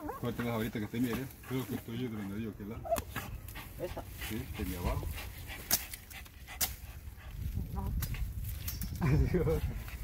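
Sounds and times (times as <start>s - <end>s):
dog panting and snuffling: 0.3s - 8.4s.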